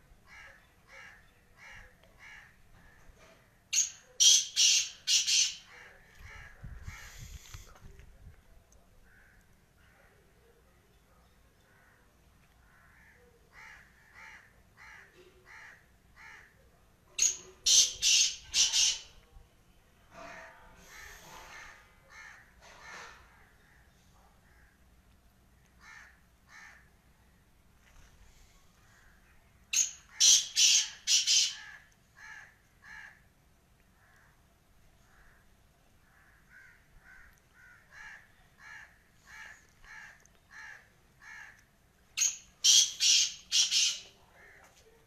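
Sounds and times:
bird harsh grating calls: 0:03.8 - 0:07.4, 0:17.2 - 0:19.1, 0:20.8 - 0:23.2, 0:29.8 - 0:33.1, 0:42.2 - 0:44.1.

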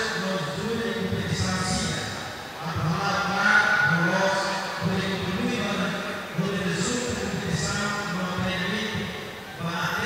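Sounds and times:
man speaking into a microphone: 0:00.0 - 0:10.0.

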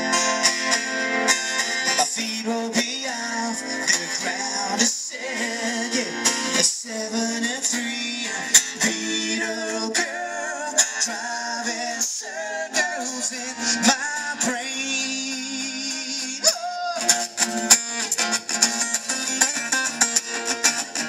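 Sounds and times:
strummed acoustic guitars: 0:00.0 - 0:21.0
person singing: 0:01.4 - 0:17.6.

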